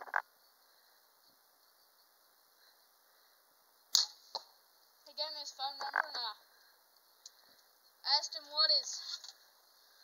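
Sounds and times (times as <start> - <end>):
arrow striking target: 3.9 - 4.5
bowstring snap: 3.9 - 4.5.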